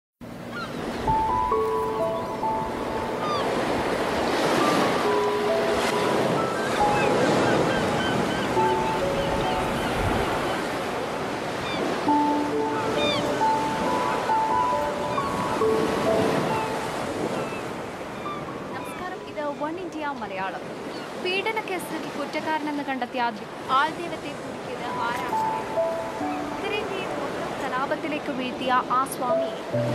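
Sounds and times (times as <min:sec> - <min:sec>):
ocean surf breaking: 0:00.3 - 0:22.7, 0:23.4 - 0:29.9
sparse melody of held notes: 0:01.1 - 0:03.9, 0:04.7 - 0:11.2, 0:12.1 - 0:17.1, 0:24.9 - 0:27.4, 0:29.2 - 0:29.9
high bird chirps: 0:11.6 - 0:19.6.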